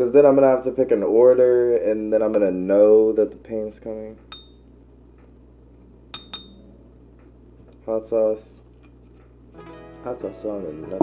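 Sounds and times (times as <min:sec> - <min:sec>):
glass clinks: 0:04.3 - 0:04.6, 0:06.2 - 0:06.6.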